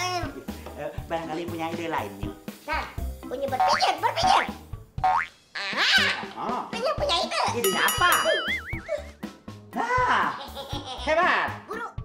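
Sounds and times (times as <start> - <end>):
comedy background music: 0.0 - 12.0
cartoon boing pitch glides: 7.7 - 9.1.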